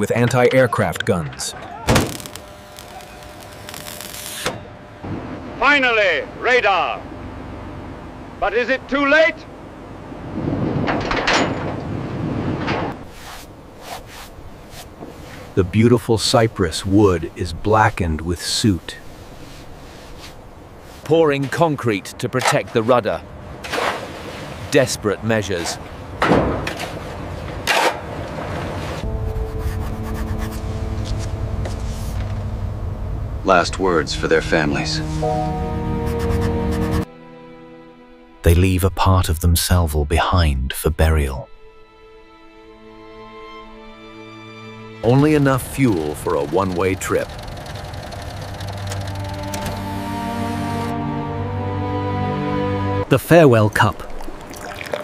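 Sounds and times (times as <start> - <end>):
steady rumble: 28.2 - 37.0, 45.0 - 50.9
low sustained music chord: 29.0 - 38.4, 48.4 - 53.1
mechanical whirring: 45.9 - 50.2.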